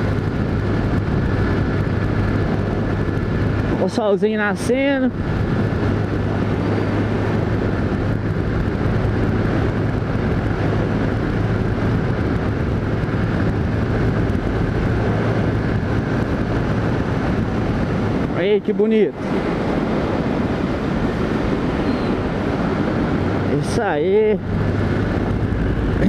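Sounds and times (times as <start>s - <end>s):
motorcycle engine cruising: 0.0s - 26.0s
wind and road noise: 0.0s - 26.0s.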